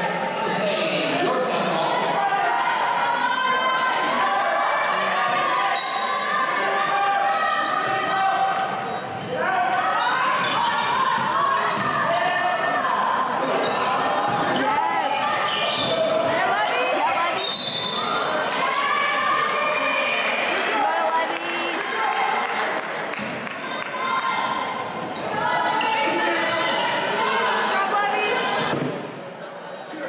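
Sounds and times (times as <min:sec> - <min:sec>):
voices calling out echoing: 0:00.0 - 0:30.0.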